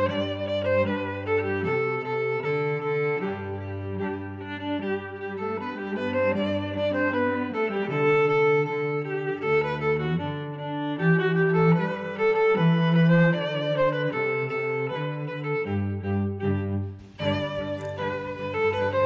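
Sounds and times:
low cello line: 0.0 - 19.0
violin melody in held notes: 0.0 - 19.0.

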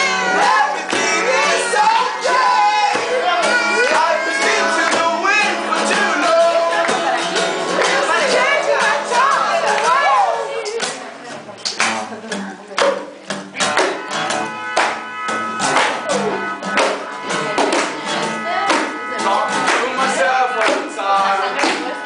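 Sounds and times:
strummed guitar and mandolin: 0.0 - 22.0.

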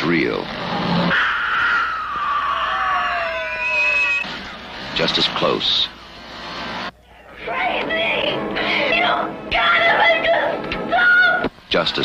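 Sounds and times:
long high scream: 1.1 - 4.3.

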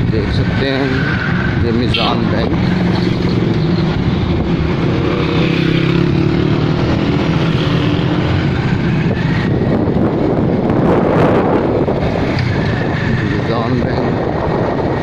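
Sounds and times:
wind on microphone: 0.0 - 15.0.

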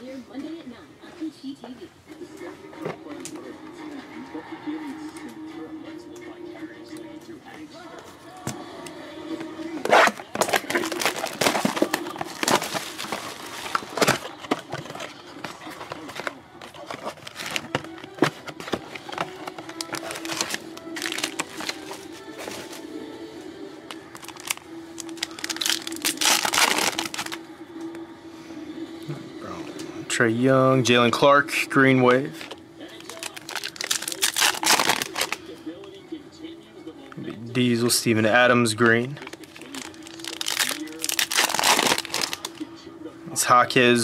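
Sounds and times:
background music: 1.9 - 44.0
cardboard and foil crinkling: 9.9 - 22.9, 23.9 - 27.4, 32.2 - 35.9, 38.8 - 42.6.

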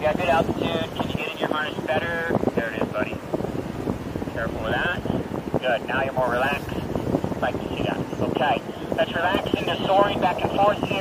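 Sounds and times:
wind rushing over microphone: 0.0 - 11.0.

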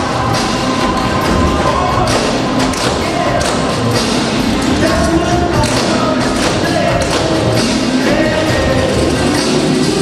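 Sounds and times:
music playing: 0.0 - 10.0
tap shoes on wooden stage: 2.6 - 3.8, 5.6 - 7.5.

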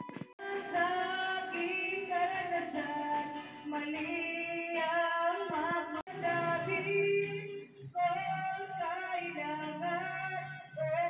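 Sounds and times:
woman singing: 0.4 - 11.0.

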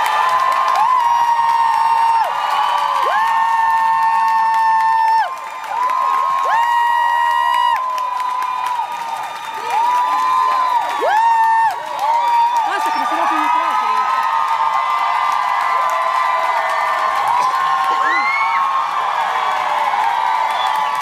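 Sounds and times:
crowd cheering: 0.0 - 21.0.

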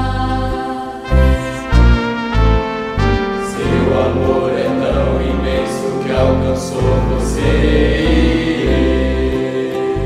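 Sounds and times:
instrumental backing with bass: 0.0 - 10.0
male choir singing a hymn: 3.3 - 10.0.

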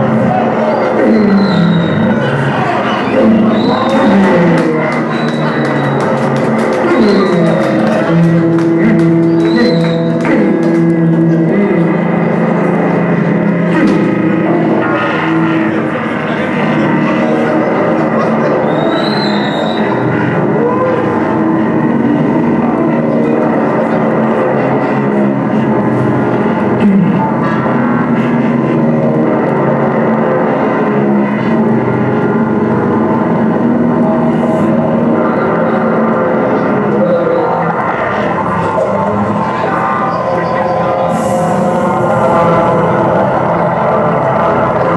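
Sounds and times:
droning noise music: 0.0 - 44.9
person's voice through microphone: 0.0 - 44.9.

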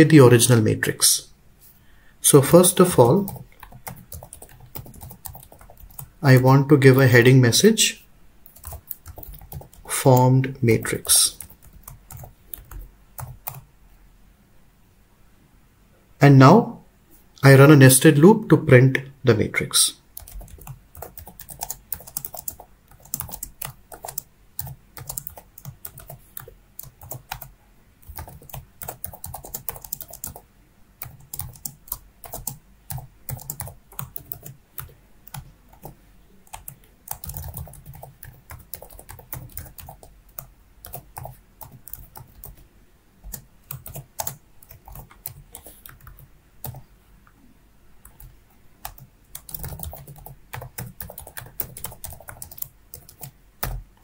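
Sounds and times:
computer keyboard typing: 2.4 - 7.1, 8.4 - 13.7, 20.1 - 30.4, 31.0 - 46.8, 48.0 - 53.9.

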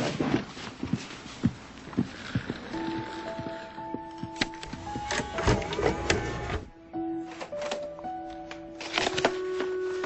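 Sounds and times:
quiet background music: 1.0 - 10.0
cassette mechanism clicking and whirring: 4.4 - 6.7.

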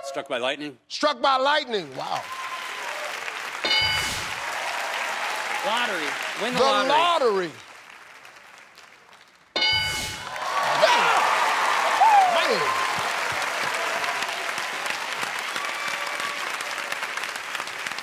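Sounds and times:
studio audience applause and cheering: 1.7 - 18.0
audience shouts and whoops: 2.2 - 3.3, 4.1 - 7.3, 10.2 - 17.2
game show answer chime: 3.6 - 4.4, 9.6 - 10.2.

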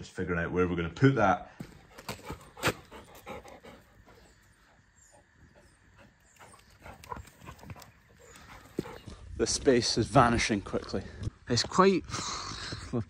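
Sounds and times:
dogs panting: 1.7 - 9.4.

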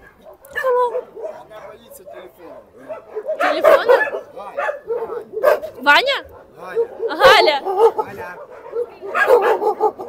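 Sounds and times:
dogs barking: 0.0 - 10.0
people's voices: 0.5 - 10.0.

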